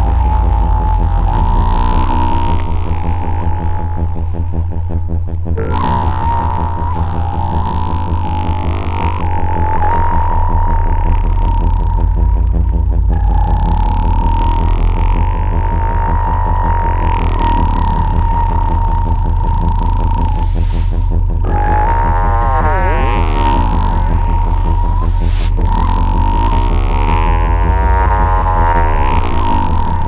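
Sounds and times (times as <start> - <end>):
pulsing low synth rumble: 0.0 - 30.0.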